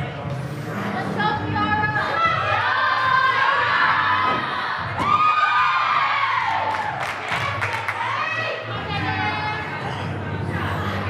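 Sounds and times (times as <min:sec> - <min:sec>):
women shouting and cheering: 0:01.5 - 0:09.8.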